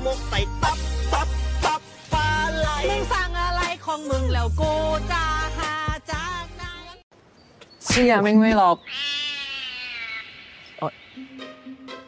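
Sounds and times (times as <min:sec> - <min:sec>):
high-pitched drawn-out cry: 0:08.9 - 0:11.2.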